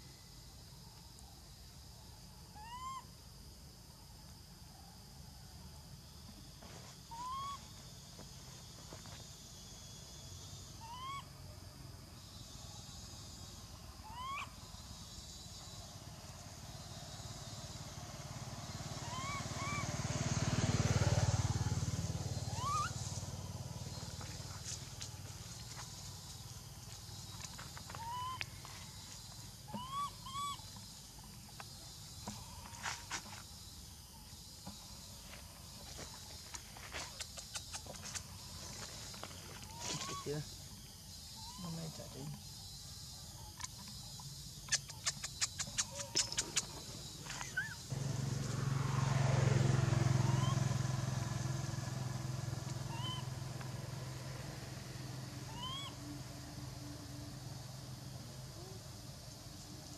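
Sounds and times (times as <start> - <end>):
short rising animal calls: 19.0 - 19.9, 22.4 - 23.2, 29.7 - 30.7, 50.1 - 50.7, 52.8 - 53.3, 55.5 - 56.0.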